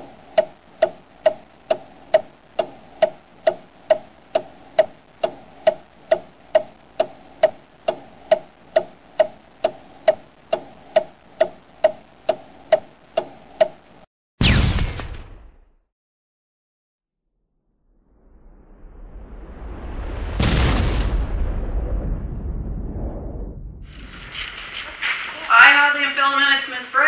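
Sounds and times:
clock ticking with ringing tone: 0:00.0 - 0:14.1.

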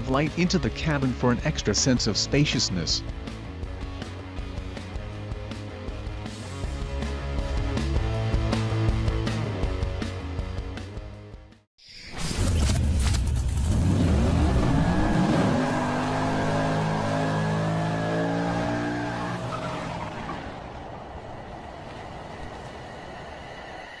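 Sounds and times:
car engine revving: 0:13.3 - 0:20.9.

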